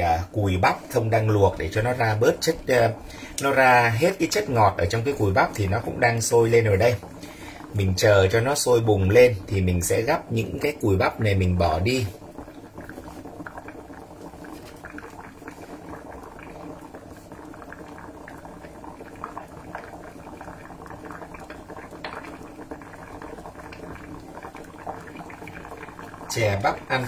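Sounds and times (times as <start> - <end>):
syrup bubbling: 0.0 - 27.0
water boiling and bubbling: 0.0 - 27.0
faint crackle: 0.2 - 27.0.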